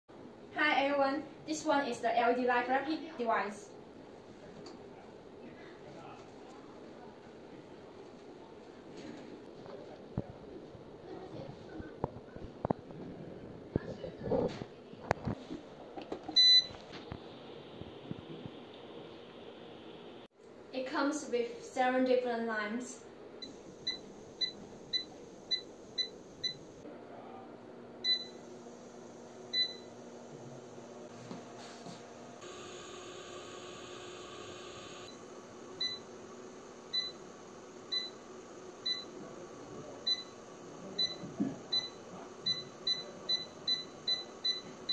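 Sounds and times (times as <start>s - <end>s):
steady hiss: 28.4s - 44.9s.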